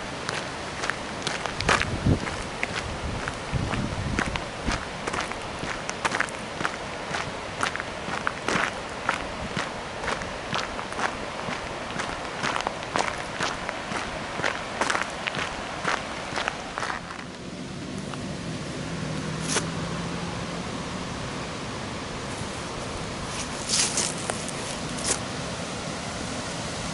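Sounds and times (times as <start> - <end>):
footsteps on gravel: 0.2 - 17.4, 23.3 - 25.2.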